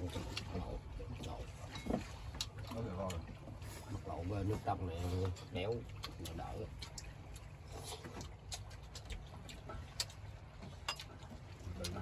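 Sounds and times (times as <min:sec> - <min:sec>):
chopsticks clinking on bowls: 0:10.8 - 0:11.2.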